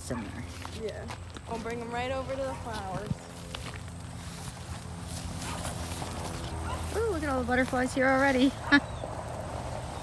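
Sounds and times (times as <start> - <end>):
footsteps through long grass: 0.0 - 10.0.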